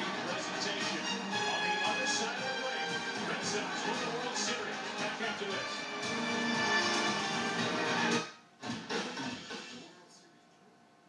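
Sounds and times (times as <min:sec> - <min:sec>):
music from television speakers: 0:00.0 - 0:10.0.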